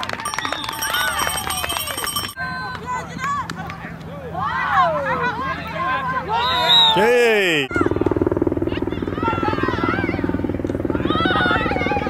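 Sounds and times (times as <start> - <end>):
spectators cheering and calling out: 0.2 - 8.0.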